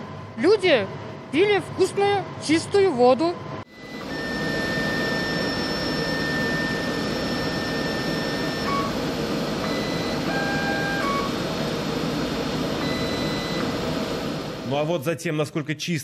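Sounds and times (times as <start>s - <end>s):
mechanical whir: 1.4s - 14.8s
short electronic tones: 3.7s - 9.0s, 9.6s - 11.4s, 12.8s - 13.8s.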